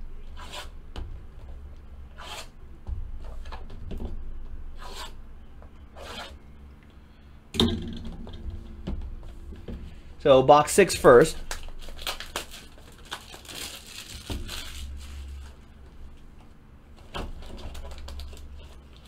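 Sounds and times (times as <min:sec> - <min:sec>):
blade slitting plastic wrap: 0:11.8 - 0:15.5.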